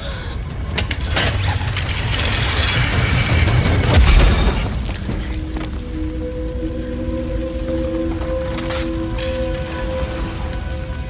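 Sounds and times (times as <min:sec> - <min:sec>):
low rumble of fire: 0:00.0 - 0:11.0.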